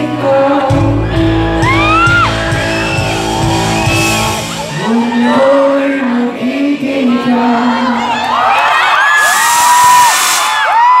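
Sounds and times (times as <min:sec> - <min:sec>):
crowd cheering and screaming: 0:00.7 - 0:06.4, 0:07.0 - 0:11.0
band final note: 0:01.6 - 0:05.0
burst of high hiss: 0:09.2 - 0:10.8.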